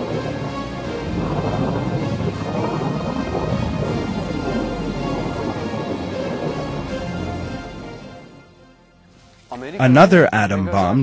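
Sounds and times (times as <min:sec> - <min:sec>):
steady deep rumble: 0:00.0 - 0:09.6
background music: 0:00.0 - 0:11.0.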